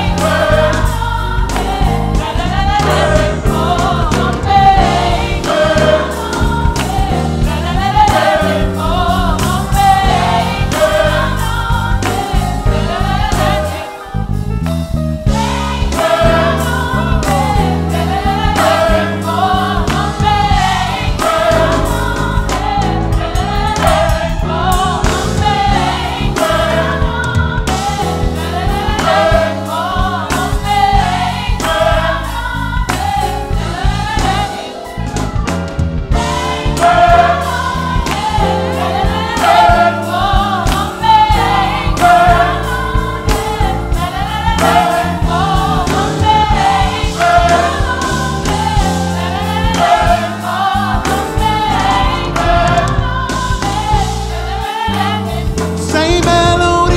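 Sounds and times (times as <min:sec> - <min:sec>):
gospel choir singing: 0:00.0 - 0:56.9
instrumental accompaniment: 0:00.0 - 0:56.9.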